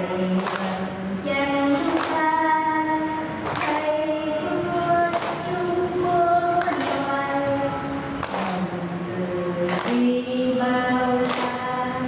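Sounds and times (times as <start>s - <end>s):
voices singing in unison: 0.0s - 12.0s.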